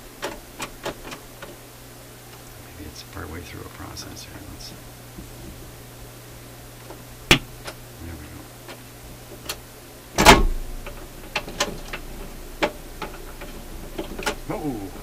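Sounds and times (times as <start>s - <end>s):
amplifier hum: 0.0s - 15.0s
record changer clunk: 6.9s - 7.8s, 10.2s - 14.5s.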